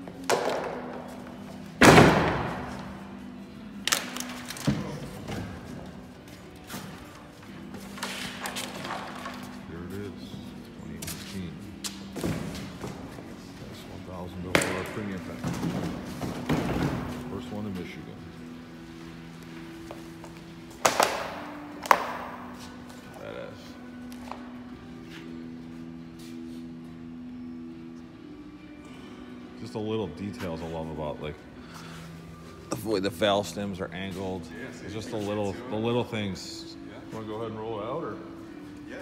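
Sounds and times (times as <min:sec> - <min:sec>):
faint music: 0:00.0 - 0:39.0.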